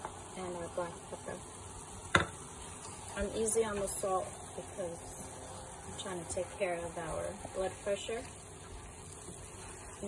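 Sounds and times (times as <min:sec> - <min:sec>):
sauce simmering with soft hiss: 0:00.0 - 0:10.0.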